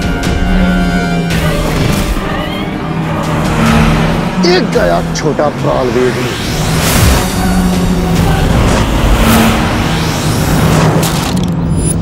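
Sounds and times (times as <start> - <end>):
car engine running fast: 0.0 - 12.0.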